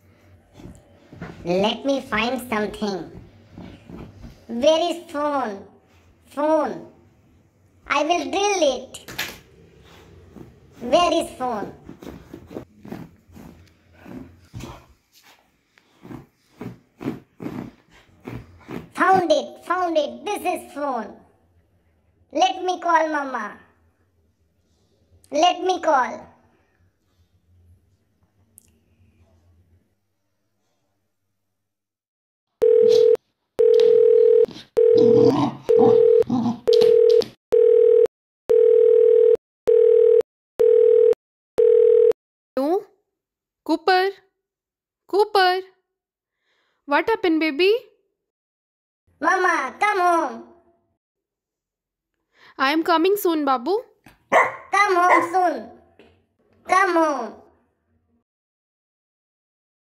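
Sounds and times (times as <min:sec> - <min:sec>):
puppy sniffing: 0:15.8 - 0:19.0
phone ringback beeps: 0:32.6 - 0:42.2.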